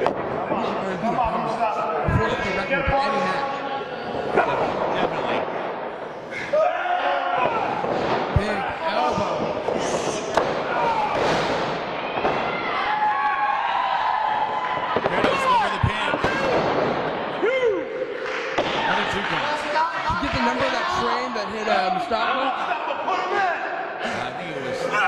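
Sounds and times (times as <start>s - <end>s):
voices calling out and talking: 0.0s - 25.0s.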